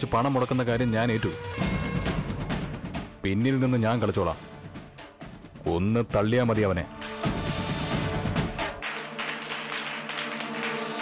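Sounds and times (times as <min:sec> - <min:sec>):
dramatic background score: 0:00.0 - 0:05.7.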